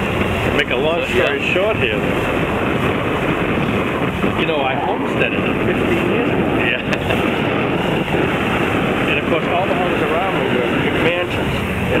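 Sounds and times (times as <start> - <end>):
rushing wind and water: 0.0 - 12.0
people talking: 0.4 - 2.3, 4.2 - 7.4, 9.0 - 12.0.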